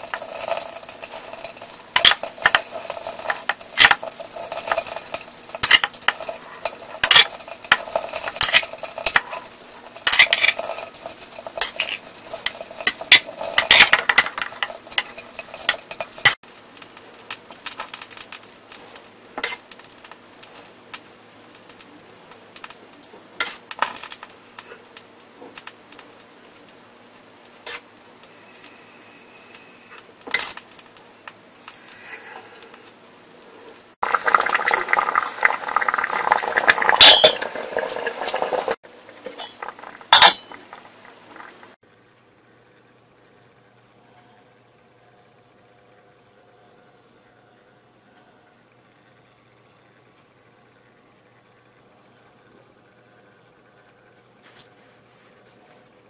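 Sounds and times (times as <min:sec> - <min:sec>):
metal cookware clanking: 0:00.0 - 0:16.4, 0:34.1 - 0:41.5
metal lid clanking on pot: 0:00.0 - 0:16.4, 0:35.7 - 0:40.8
spoon scraping ceramic bowl: 0:00.0 - 0:16.4.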